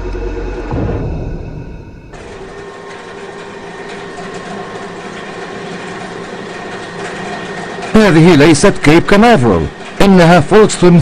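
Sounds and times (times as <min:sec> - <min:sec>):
heavy tunnelling machinery running: 0:00.0 - 0:11.0.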